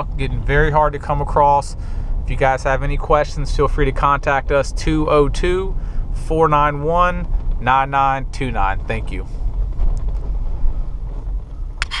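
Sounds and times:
low rumble of engine and road: 0.0 - 12.0.

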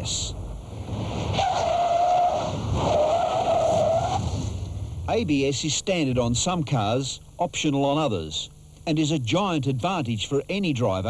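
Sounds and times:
car tyres squealing: 1.0 - 4.5.

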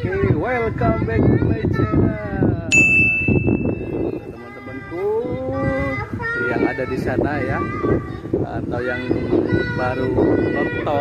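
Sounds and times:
bright bell ding: 2.7 - 3.9.

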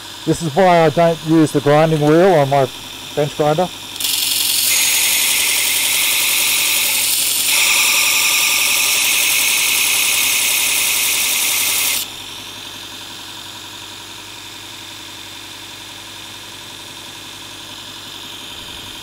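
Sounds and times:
blade grinding on belt: 0.6 - 12.2
belt sharpener running: 0.6 - 12.9.

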